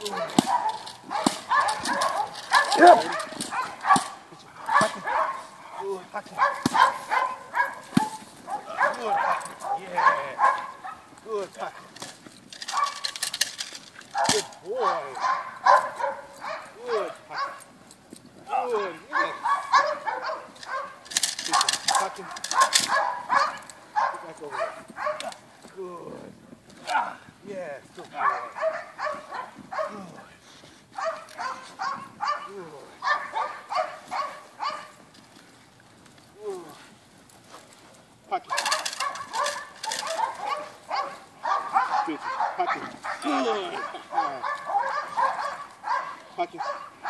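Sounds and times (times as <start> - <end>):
dog barking and growling: 0.0 - 11.9, 12.7 - 13.2, 14.1 - 17.7, 18.5 - 25.4, 28.1 - 30.3, 31.0 - 35.0, 38.3 - 47.0.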